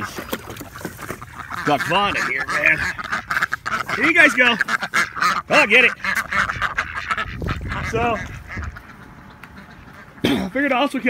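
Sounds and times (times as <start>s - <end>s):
ducks quacking and chattering: 0.0s - 11.0s.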